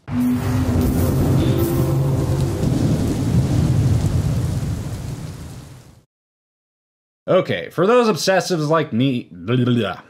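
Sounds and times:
thunder rumble: 0.0 - 6.0
rain-like hiss: 0.7 - 6.1.

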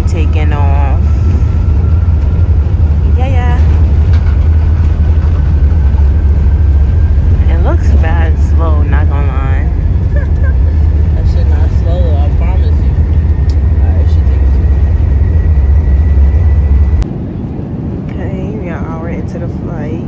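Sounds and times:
airliner engine rumble: 0.0 - 20.0
passenger voices: 0.0 - 20.0.

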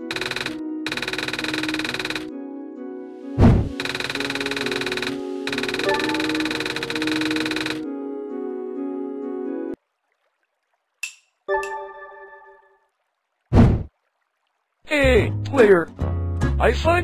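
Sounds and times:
text typing clicks: 0.0 - 2.3, 3.8 - 7.8
background game music: 0.0 - 9.8, 11.4 - 12.9, 15.0 - 17.0.

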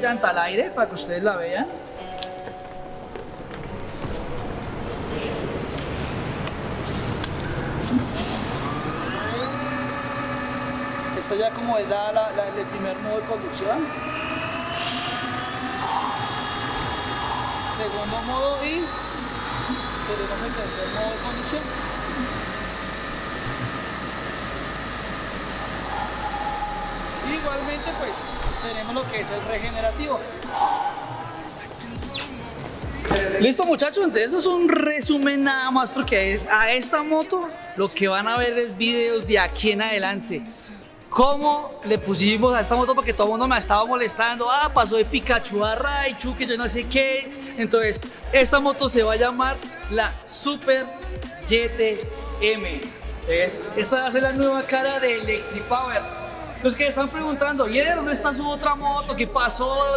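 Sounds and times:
electric motor whine: 7.5 - 32.9, 55.0 - 56.6.

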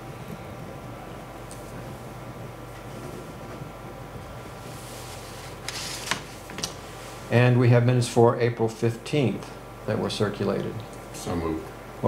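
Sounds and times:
low room hum: 0.0 - 12.0
paper rustling: 5.1 - 6.7.

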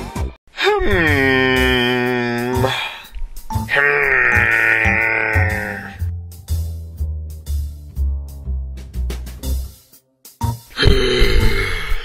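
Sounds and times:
background music with bass: 0.0 - 12.0
cartoon character humming thoughtfully: 0.6 - 3.0, 3.7 - 6.0.

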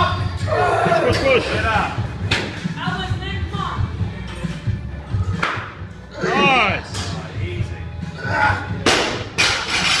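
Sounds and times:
barbell plates rattling: 9.4 - 10.0.

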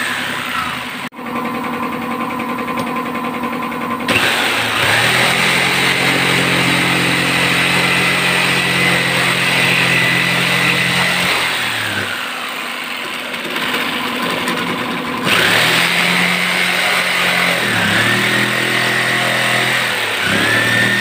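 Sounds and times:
electric jigsaw cutting wood: 0.0 - 1.1, 4.1 - 21.0.

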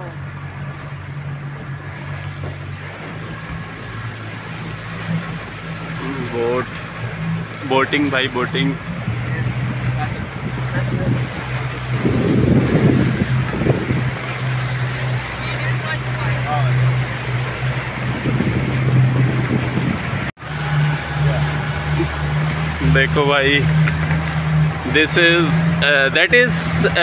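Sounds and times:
motorboat engine humming: 0.0 - 27.0
water noise: 0.0 - 27.0
wind: 0.0 - 27.0.

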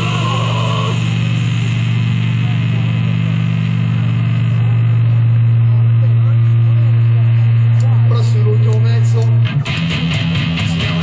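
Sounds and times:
amplifier electrical hum: 0.0 - 11.0.

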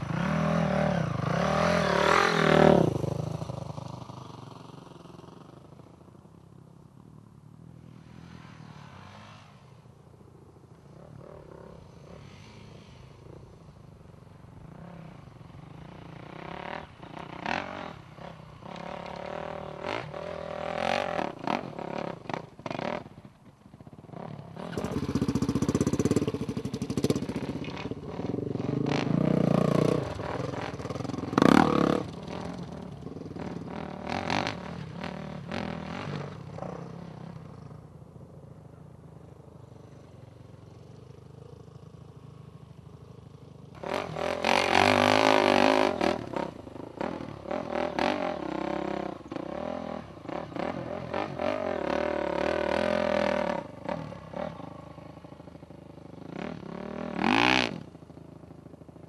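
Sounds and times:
dirt bike engine revving: 24.6 - 36.7, 43.8 - 54.9, 56.3 - 57.9.

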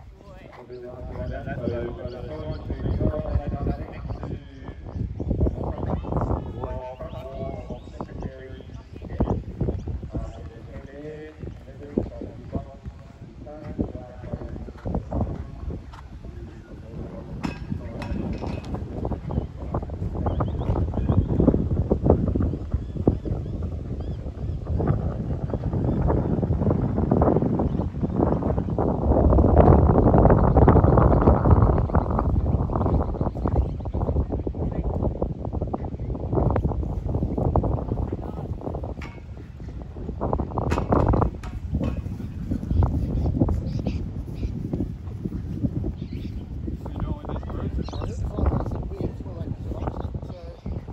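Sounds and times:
wind buffeting microphone: 0.0 - 50.9.

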